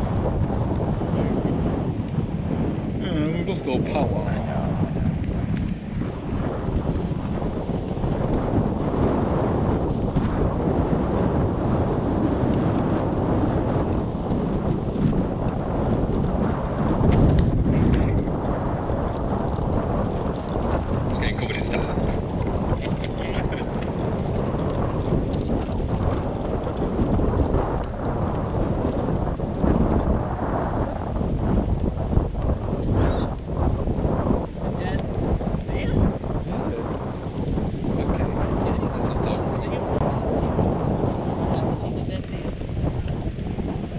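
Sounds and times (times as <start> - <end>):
wind noise on microphone: 0.0 - 43.9.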